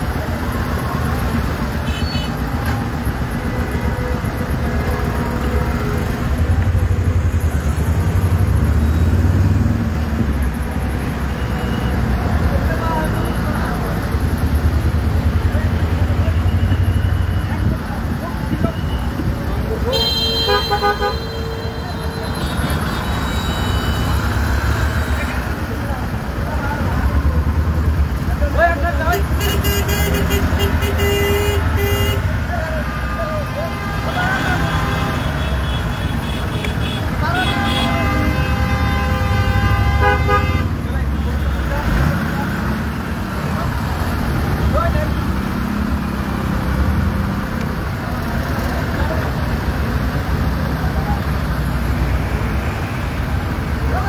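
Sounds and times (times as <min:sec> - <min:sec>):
idling truck and car engines: 0:00.0 - 0:54.0
vehicle horns: 0:01.8 - 0:02.5, 0:19.8 - 0:25.6, 0:29.0 - 0:42.1.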